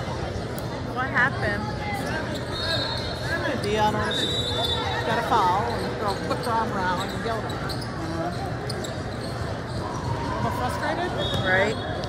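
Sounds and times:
basketballs bouncing on court: 11.1 - 11.7.

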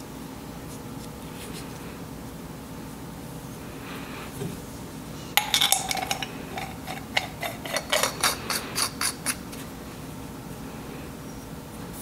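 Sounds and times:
metal containers clinking: 5.4 - 9.5.

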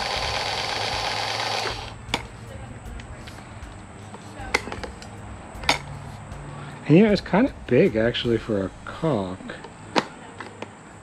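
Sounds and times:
caulk gun motor whirring: 0.0 - 2.2.

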